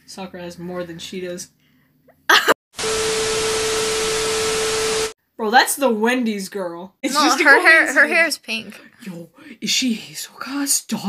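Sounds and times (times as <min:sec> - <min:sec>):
tv static hiss: 0:02.8 - 0:05.1.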